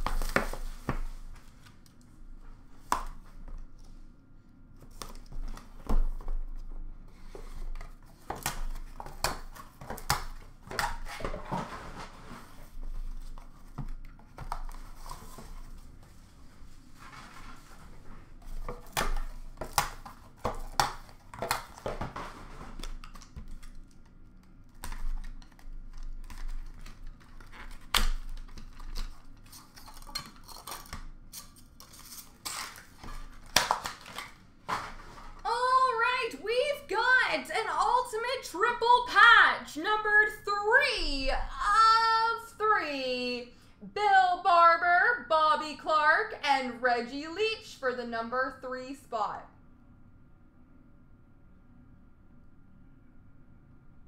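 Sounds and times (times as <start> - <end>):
wrapping crinkling and tearing: 16.8 - 35.4.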